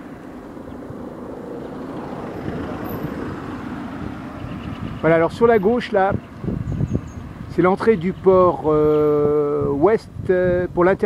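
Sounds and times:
car engine: 0:00.0 - 0:07.8
road noise: 0:00.0 - 0:11.0.

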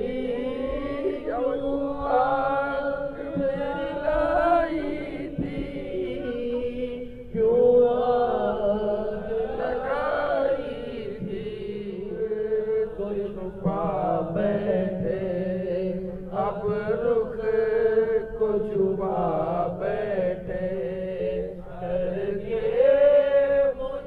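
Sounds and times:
man chanting into a microphone: 0:00.0 - 0:24.0.

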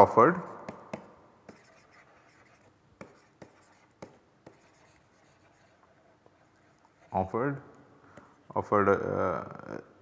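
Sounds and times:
stylus scratching on tablet: 0:00.9 - 0:07.5.

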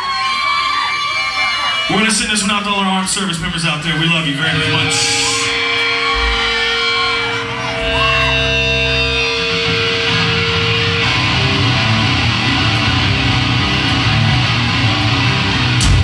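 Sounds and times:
live heavy metal band: 0:04.0 - 0:16.0.

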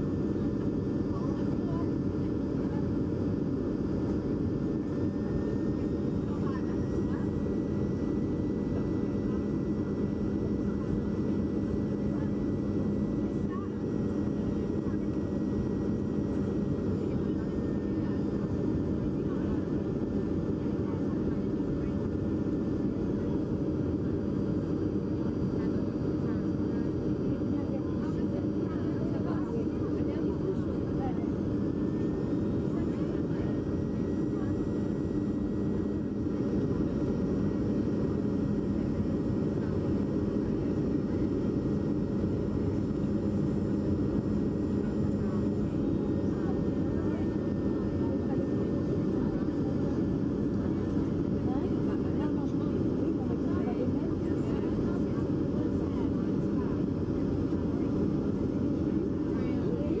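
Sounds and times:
jet engine cabin drone: 0:00.0 - 1:00.0.

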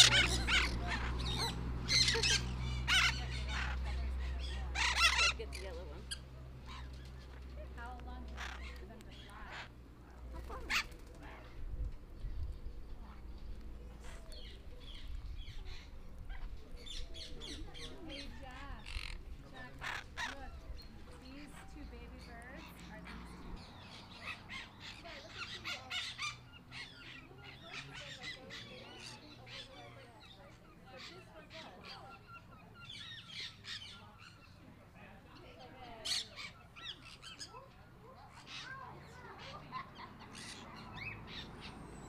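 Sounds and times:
parrots chirping and whistling: 0:00.0 - 0:07.2
parakeets squawking and chattering: 0:00.0 - 0:34.8, 0:35.4 - 0:42.0.

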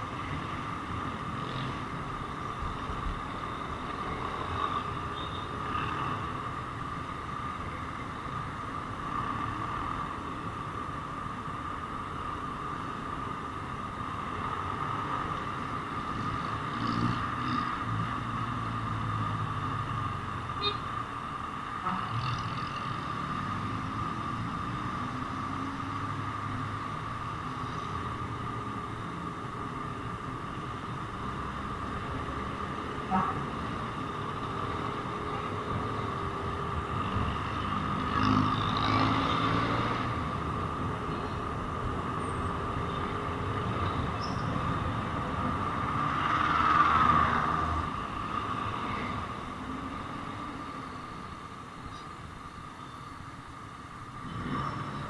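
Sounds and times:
road and wind noise: 0:00.0 - 0:55.0.

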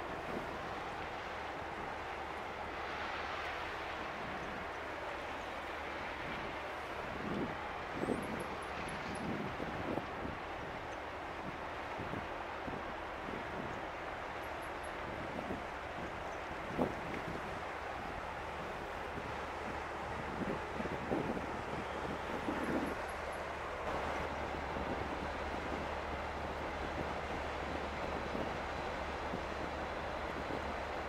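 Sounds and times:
ship engine drone: 0:00.0 - 0:31.0
wind on microphone: 0:06.2 - 0:13.8, 0:15.0 - 0:31.0.

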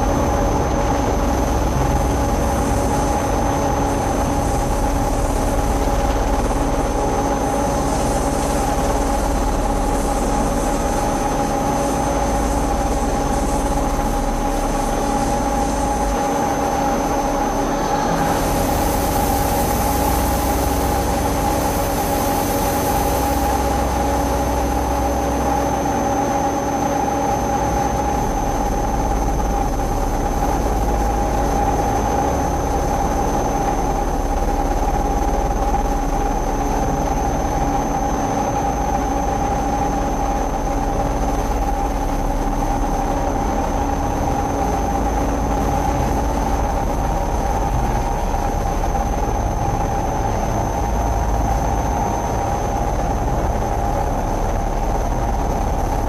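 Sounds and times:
drone noise music: 0:00.0 - 0:56.0.

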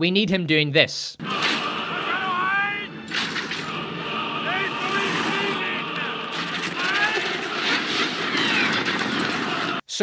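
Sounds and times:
crowd din: 0:01.2 - 0:09.8
voices yelling war cries: 0:01.3 - 0:03.0, 0:03.7 - 0:07.6.

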